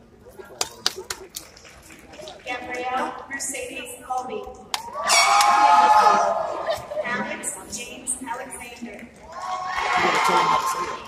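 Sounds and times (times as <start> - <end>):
spectator screaming cheer: 4.8 - 6.8, 9.3 - 11.0.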